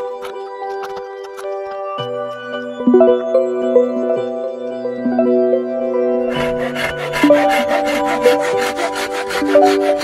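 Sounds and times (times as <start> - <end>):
hand saw cutting through tube: 6.3 - 10.0.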